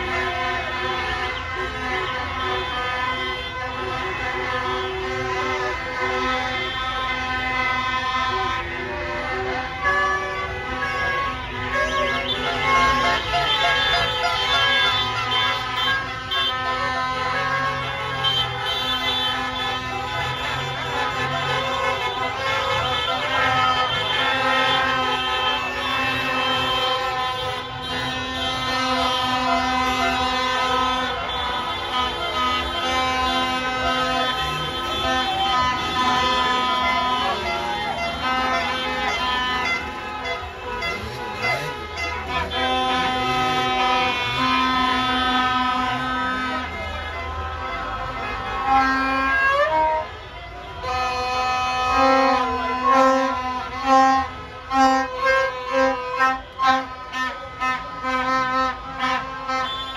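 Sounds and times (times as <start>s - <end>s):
car horns honking: 0.0s - 59.9s
crowd voices: 0.0s - 59.9s
low horn tone: 0.0s - 59.9s
slow traffic: 0.0s - 59.9s.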